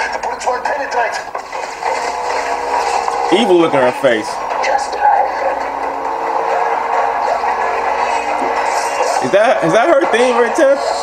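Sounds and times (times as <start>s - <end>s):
film score music: 0.0s - 11.0s
vehicle engine noise: 1.1s - 11.0s.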